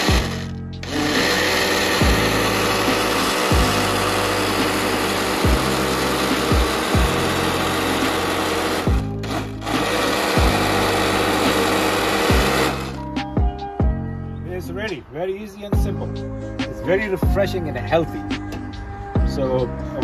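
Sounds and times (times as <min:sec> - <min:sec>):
blender running: 0:00.0 - 0:13.0
background music with bass beat: 0:00.0 - 0:15.0, 0:15.7 - 0:20.0.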